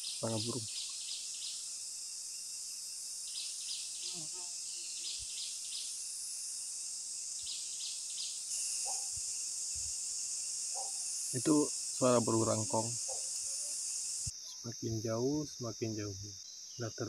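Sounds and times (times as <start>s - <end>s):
faint low bird calls: 0.0s - 1.0s
high insect drone: 0.0s - 17.0s.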